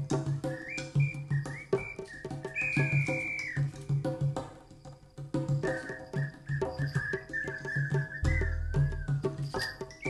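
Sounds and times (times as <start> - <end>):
low pulsing drum: 8.2 - 9.4
quick struck notes: 8.2 - 9.8.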